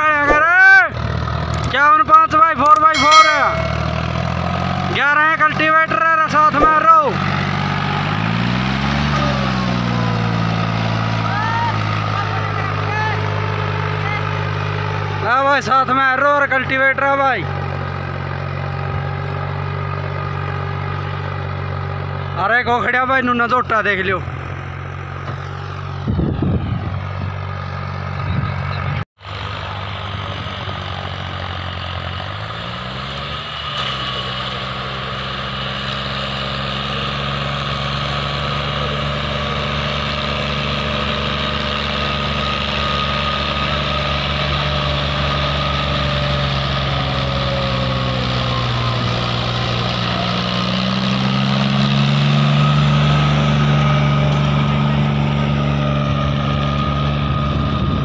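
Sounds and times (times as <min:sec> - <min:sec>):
tractor diesel engine under load: 0:00.0 - 0:03.0, 0:03.7 - 0:58.0.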